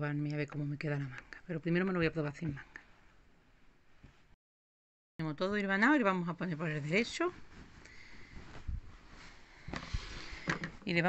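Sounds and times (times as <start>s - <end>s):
fabric rustling: 6.4s - 11.0s.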